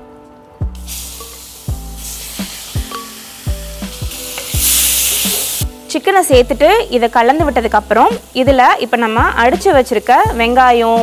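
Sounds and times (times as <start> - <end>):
background music with steady beat: 0.0 - 11.0
chicken sizzling in hot oil: 0.8 - 5.9, 6.8 - 11.0.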